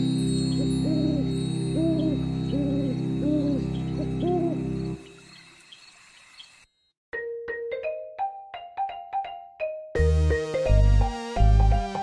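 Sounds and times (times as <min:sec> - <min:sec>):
sustained music pad: 0:00.0 - 0:05.3
owl hooting: 0:00.8 - 0:05.0.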